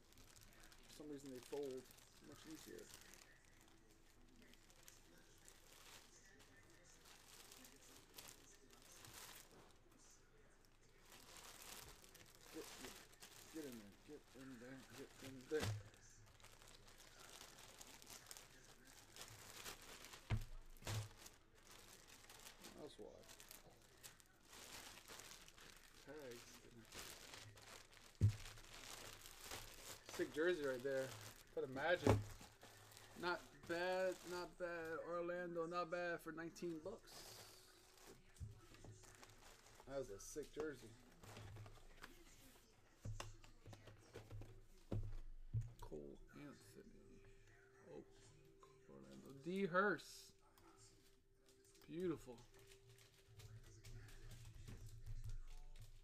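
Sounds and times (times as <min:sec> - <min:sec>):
plastic packaging crinkling: 0:00.0 - 0:09.8, 0:10.4 - 0:35.1, 0:36.5 - 0:46.0, 0:51.0 - 0:56.0.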